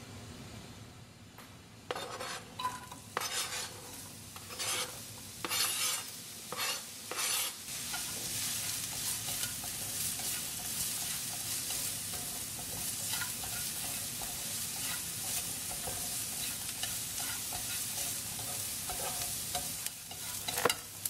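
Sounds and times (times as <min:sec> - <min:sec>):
chopsticks tapping and scraping pan: 0:01.9 - 0:21.0
onion sizzling in hot oil: 0:01.9 - 0:21.0.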